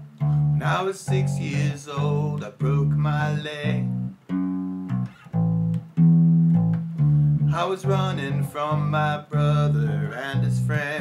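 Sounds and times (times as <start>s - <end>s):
electric bass guitar plucked notes: 0.0s - 11.0s.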